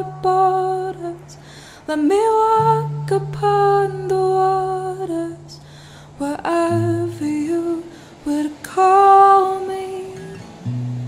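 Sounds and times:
woman singing slow held notes: 0.0s - 10.4s.

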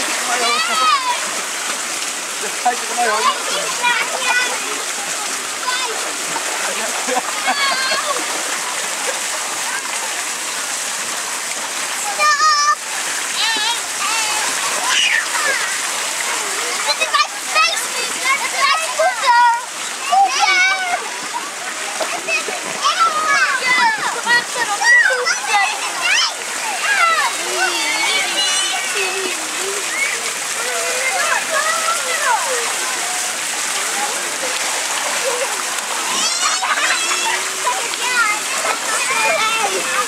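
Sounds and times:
children shouting: 0.0s - 1.4s, 7.1s - 8.6s, 12.0s - 40.0s
fountain splashing into pool: 0.0s - 40.0s
child's high call: 36.1s - 37.4s.

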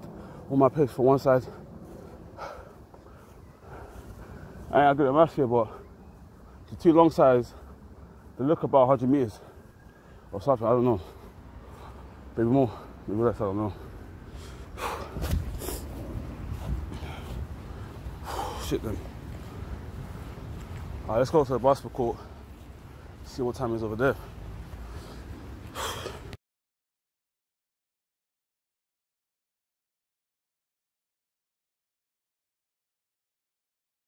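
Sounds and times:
man breathing hard: 0.0s - 0.5s, 1.4s - 4.7s, 11.0s - 13.1s, 13.7s - 20.4s, 24.3s - 26.4s
wind rumble on microphone: 13.9s - 25.7s.

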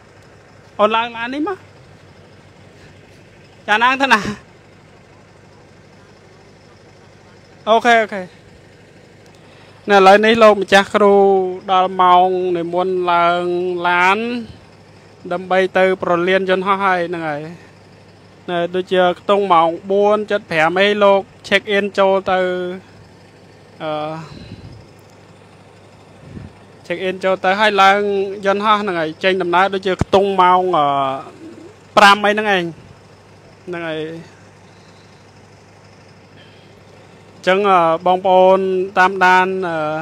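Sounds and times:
bus engine idling: 0.0s - 40.0s
person speaking: 0.8s - 1.8s, 3.6s - 4.5s, 9.8s - 17.7s, 26.2s - 32.9s.

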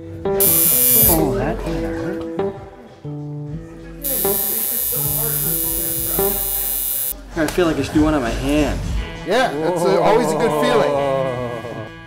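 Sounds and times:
guitar music: 0.3s - 7.2s
tattoo machine buzzing: 0.4s - 1.3s, 4.0s - 7.2s.

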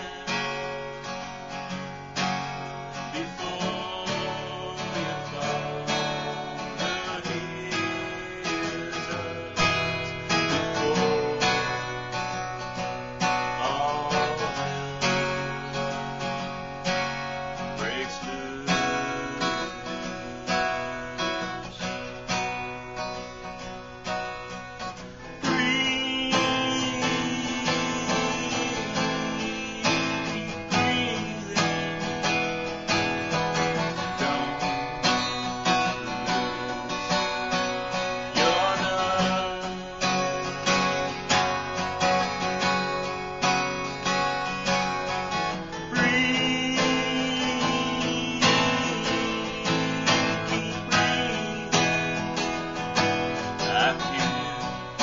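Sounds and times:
man singing: 0.0s - 23.6s, 24.9s - 55.0s
acoustic guitar strumming: 0.0s - 55.0s.

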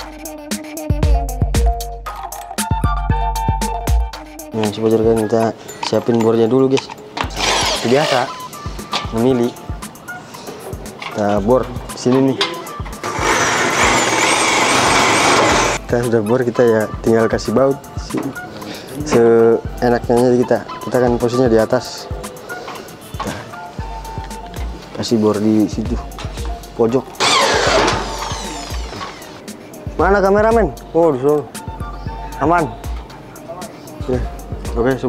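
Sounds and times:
electric drill boring into metal: 7.2s - 8.3s, 13.0s - 15.8s, 27.2s - 29.4s.

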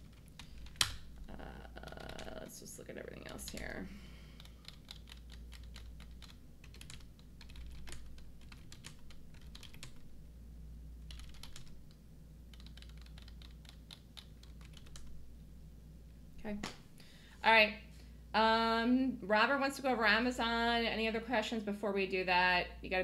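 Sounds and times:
computer keyboard typing: 0.0s - 3.8s, 4.4s - 10.1s, 11.1s - 15.1s
low steady hum: 0.0s - 23.0s.

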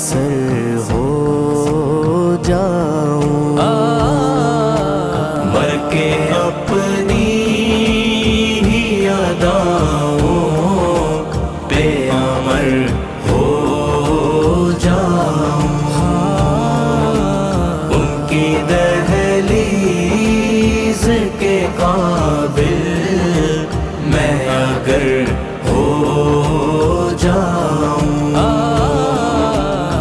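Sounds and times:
men singing devotional chant: 0.0s - 30.0s
low drone: 0.6s - 30.0s.

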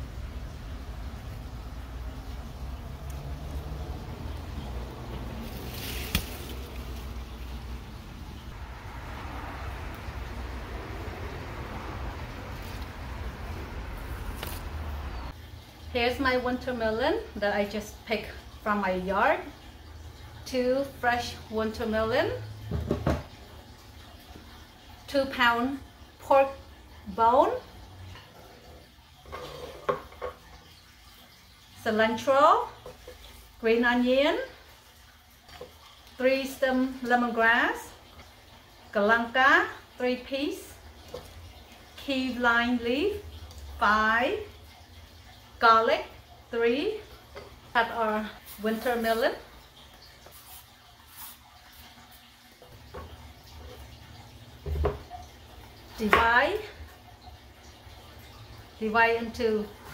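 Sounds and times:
knocks on wooden chopping board: 22.7s - 23.2s.

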